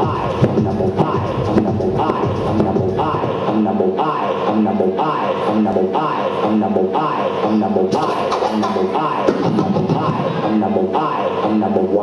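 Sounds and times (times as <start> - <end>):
turntable scratching hip hop: 0.0 - 12.0.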